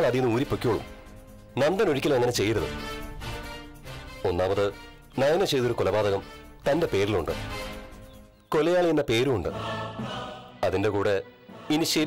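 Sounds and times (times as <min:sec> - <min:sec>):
man speaking: 0:04.2 - 0:07.5, 0:10.6 - 0:12.0
choir-like chord music: 0:09.2 - 0:12.0.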